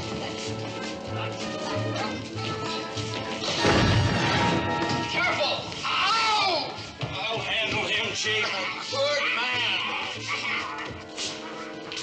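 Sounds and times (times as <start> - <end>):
background music: 0.0 - 12.0
gas bomb blast: 3.6 - 4.8.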